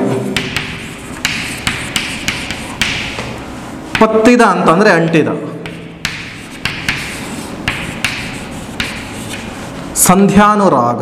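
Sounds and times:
chalk scratching on chalkboard: 0.0 - 4.1, 5.6 - 10.0
chalk tapping on chalkboard: 0.0 - 4.3, 5.6 - 9.9.

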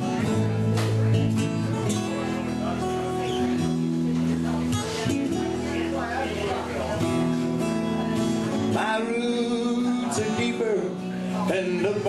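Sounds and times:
acoustic guitars strumming: 0.0 - 12.0
electric bass guitar: 0.0 - 12.0.

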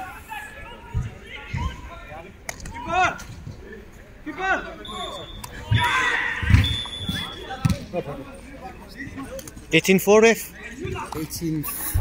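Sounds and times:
people calling out: 4.4 - 7.7.

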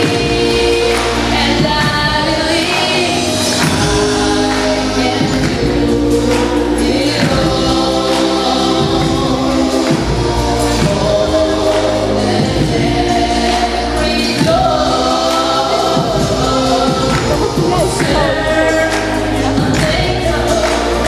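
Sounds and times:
girl singing pop song: 0.0 - 9.4
backing track: 0.0 - 21.0.

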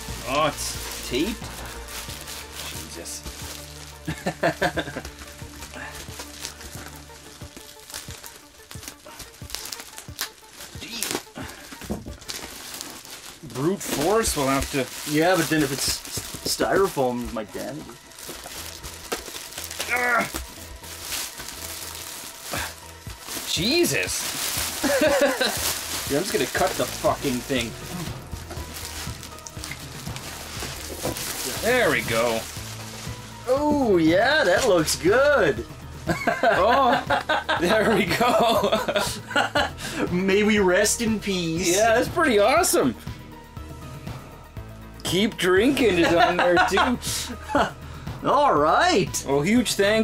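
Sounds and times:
plastic garbage bag crinkling: 0.0 - 37.0
quiet background music: 0.0 - 50.0.

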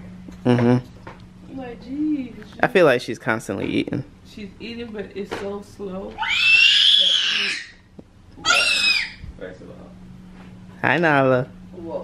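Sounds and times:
toddler squealing: 6.2 - 7.8, 8.4 - 9.2.

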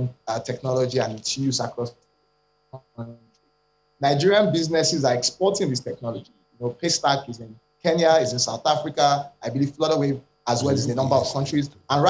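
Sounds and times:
man's voice over video call: 0.0 - 1.9, 2.8 - 3.2, 4.0 - 12.0
faint electrical hum: 0.0 - 12.0.

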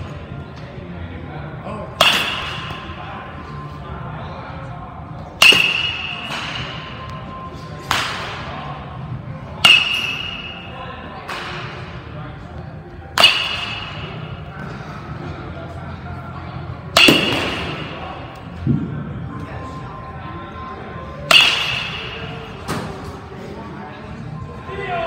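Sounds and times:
metal bat pinging balls: 5.4 - 6.9, 9.6 - 10.6, 13.2 - 14.3, 16.9 - 18.0, 21.2 - 22.5.

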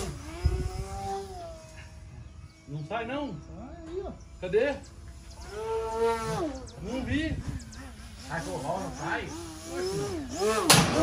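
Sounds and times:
model airplane motor buzzing: 0.0 - 11.0.

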